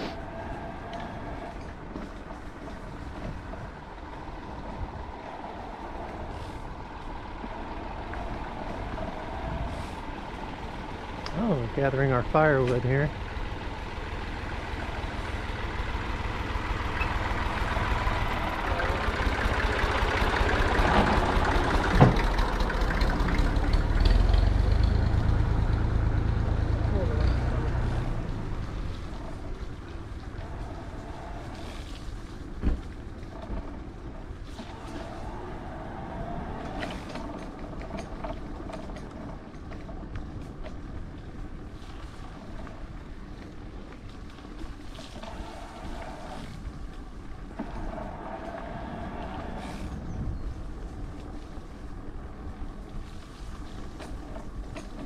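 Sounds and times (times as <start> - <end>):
heavy vehicle engine running: 0.0 - 55.0
ride noise: 0.0 - 55.0.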